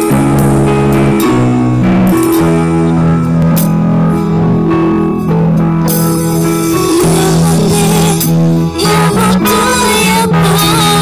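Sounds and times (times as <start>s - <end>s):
drum and cymbal hits: 0.0s - 9.0s
bass line: 0.0s - 11.0s
held guitar notes: 0.0s - 11.0s.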